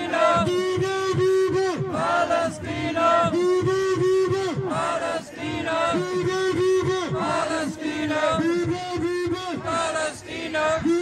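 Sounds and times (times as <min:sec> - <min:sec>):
crowd chanting: 0:00.0 - 0:01.1, 0:01.7 - 0:11.0
man shouting through megaphone: 0:00.0 - 0:11.0.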